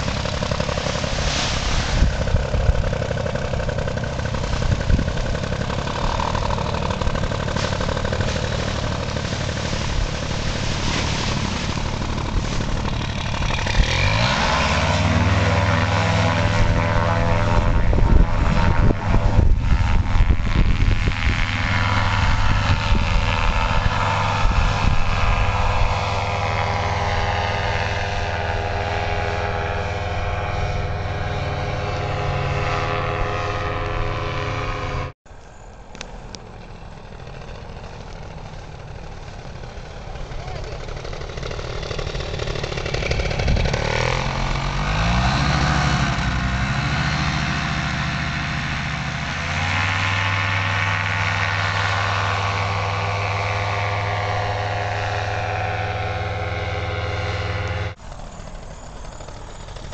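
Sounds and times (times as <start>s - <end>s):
paramotor engine and propeller: 0.0s - 59.9s.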